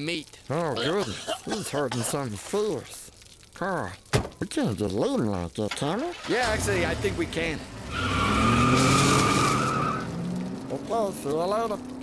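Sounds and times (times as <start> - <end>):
car engine revving: 6.4 - 12.0
car tyres squealing: 6.5 - 10.6.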